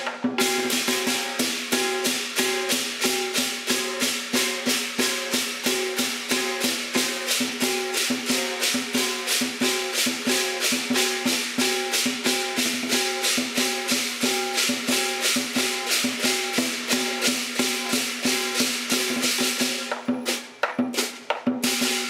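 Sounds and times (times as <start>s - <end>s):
bright splashy cymbals: 0.0s - 22.0s
drum beating: 0.0s - 22.0s
gong: 0.4s - 19.9s.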